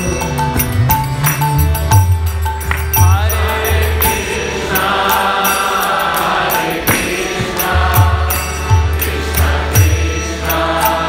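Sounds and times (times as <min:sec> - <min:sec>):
harmonium: 0:00.0 - 0:11.0
small hand cymbals striking: 0:00.0 - 0:11.0
voices chanting: 0:03.1 - 0:11.0.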